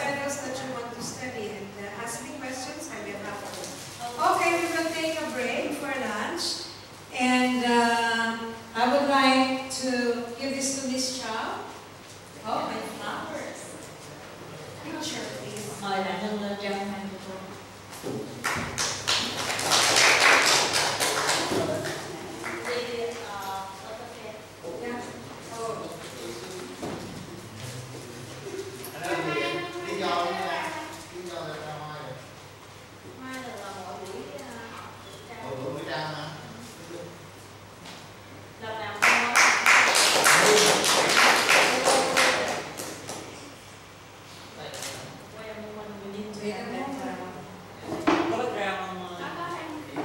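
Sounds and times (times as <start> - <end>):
group clapping hands: 18.3 - 22.9, 39.0 - 43.4.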